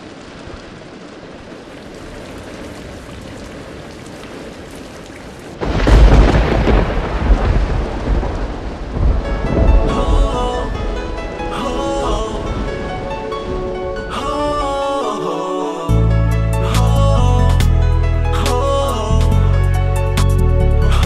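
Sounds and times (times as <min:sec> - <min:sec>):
thunder rumbling: 0:00.0 - 0:15.1
rain falling: 0:00.0 - 0:21.0.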